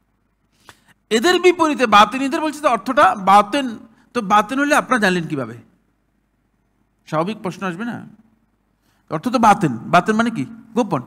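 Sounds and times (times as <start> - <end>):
man lecturing: 1.1 - 5.7, 7.1 - 8.2, 9.1 - 11.0.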